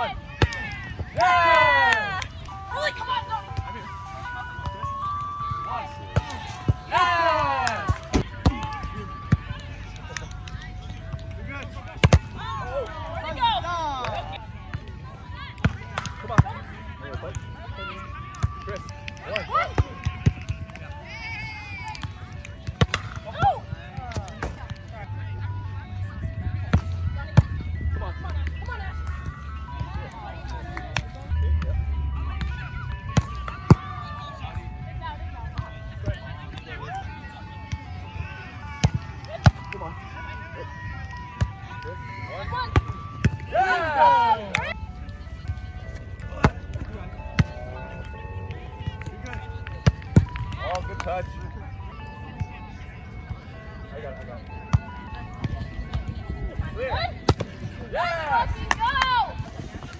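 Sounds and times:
players shouting: 0.0 - 3.8, 5.8 - 10.2, 41.7 - 44.8, 56.7 - 59.4
background music melody: 0.0 - 59.9.

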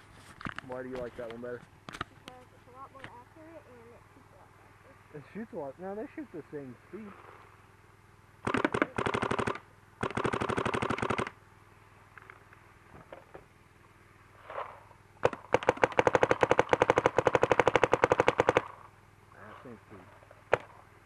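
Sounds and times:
paintball marker shots: 8.4 - 11.4, 15.2 - 18.8, 20.5 - 20.8.

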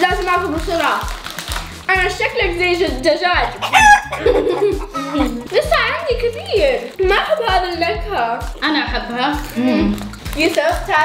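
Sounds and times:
music with low beat: 0.0 - 11.0
chicken clucking and crowing: 3.6 - 5.1.

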